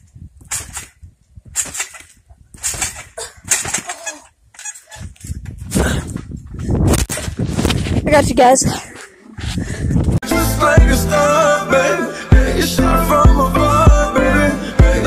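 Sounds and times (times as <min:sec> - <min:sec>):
trampoline spring and mat noise: 0:00.0 - 0:10.2.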